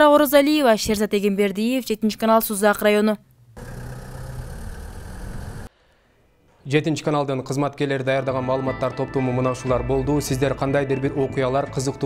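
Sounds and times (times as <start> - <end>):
car driving along road: 3.6 - 5.7.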